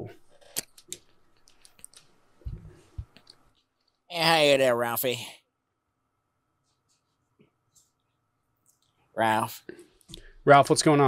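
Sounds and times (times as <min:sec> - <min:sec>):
soft low thumps: 0:02.4 - 0:03.2.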